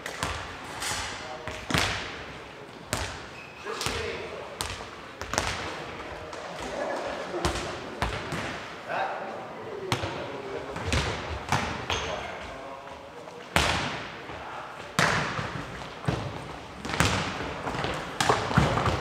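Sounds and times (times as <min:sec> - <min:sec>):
ball knocks echoing in hall: 0:00.0 - 0:08.9, 0:09.8 - 0:12.5, 0:13.5 - 0:19.0.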